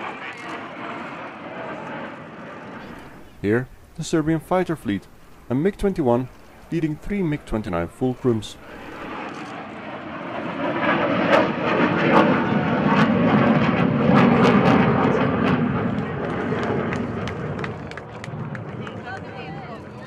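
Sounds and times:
fighter jets flying past: 0.0s - 20.0s.

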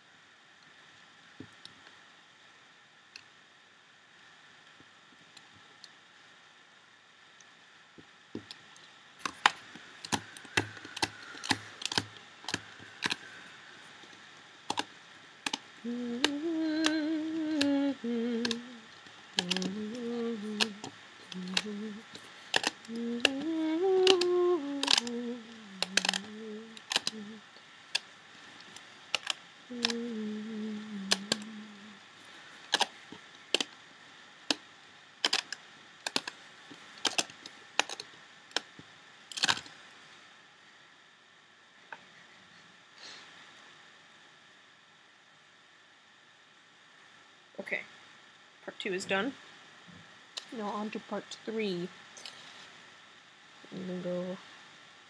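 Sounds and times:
rubber bands clicking on plastic pegs: 9.2s - 13.3s, 14.0s - 17.8s, 18.4s - 27.3s, 27.9s - 30.2s, 32.6s - 33.7s, 35.2s - 36.4s, 37.0s - 39.7s
woman humming: 15.8s - 27.6s, 29.7s - 32.1s, 53.7s - 54.4s.

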